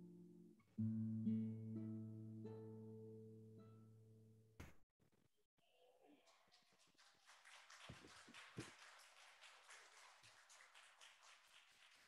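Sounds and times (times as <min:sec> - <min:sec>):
audience clapping: 0:06.2 - 0:12.0.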